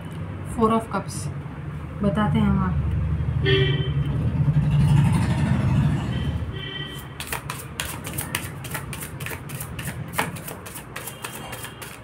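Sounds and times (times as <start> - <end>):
vehicle engine passing: 2.6 - 7.2
cards being shuffled: 7.2 - 12.0.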